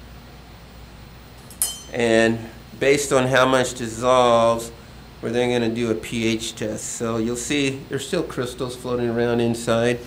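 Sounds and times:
glassware clinking: 1.4 - 2.1.

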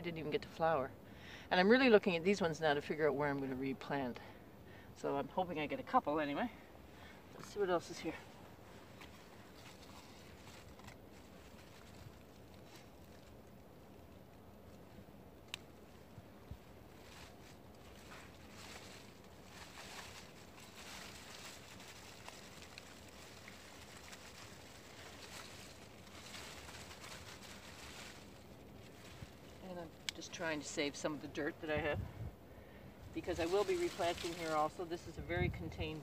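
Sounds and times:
rustling and scraping of soil: 5.0 - 32.1, 33.0 - 36.0.

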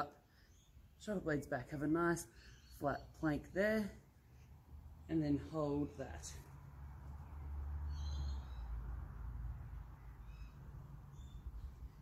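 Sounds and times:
bird chirps: 7.2 - 8.8, 10.0 - 12.0.

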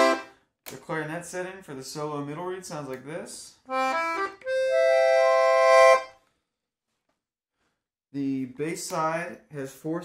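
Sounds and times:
accordion note and chord: 0.0 - 0.3, 3.7 - 6.2.

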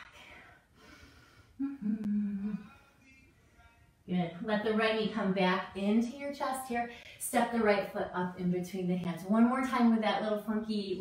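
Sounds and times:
woman breathing: 0.0 - 2.9
woman's held wordless voice: 4.1 - 11.0.

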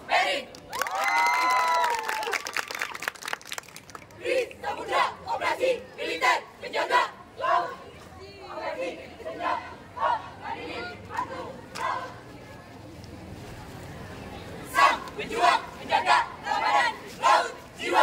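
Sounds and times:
shouted chant lines: 4.2 - 7.9, 8.5 - 12.2, 14.7 - 18.0.

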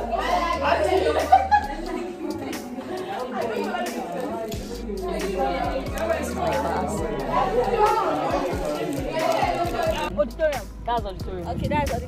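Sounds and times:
chatter in echoing room: 0.0 - 12.0.

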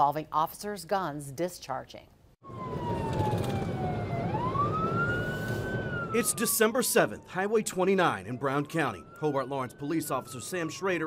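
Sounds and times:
police siren wailing: 2.4 - 11.0
road and engine noise: 2.4 - 11.0.

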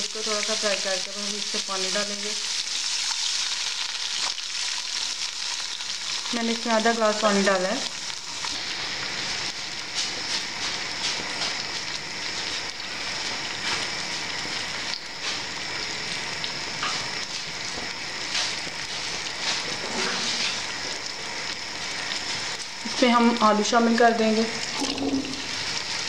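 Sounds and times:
oil and water sizzling in a pot: 0.0 - 26.0.

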